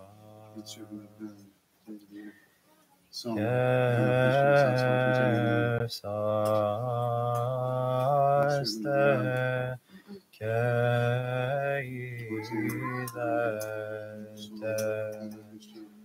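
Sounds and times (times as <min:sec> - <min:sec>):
man chanting a hymn: 0:00.0 - 0:02.3, 0:03.2 - 0:09.8, 0:10.4 - 0:16.0.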